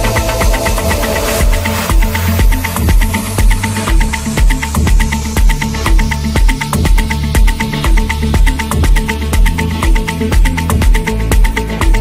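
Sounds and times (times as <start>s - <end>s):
afro house dance music: 0.0s - 12.0s
kick drum: 0.0s - 12.0s.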